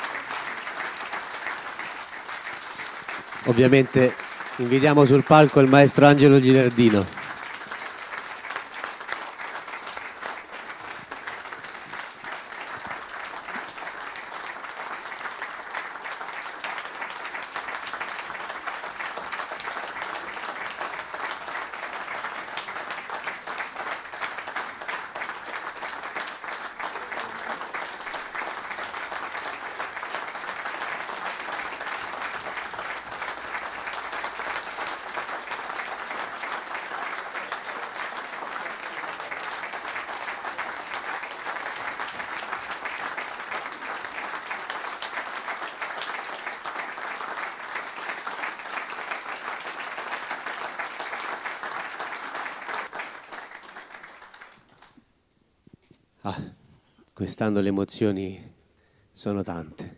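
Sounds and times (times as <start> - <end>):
audience applause: 0.0 - 55.0.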